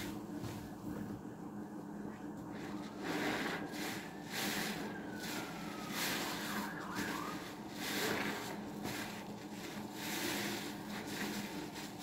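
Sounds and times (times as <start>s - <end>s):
sponge squelching in suds: 2.6s - 12.0s.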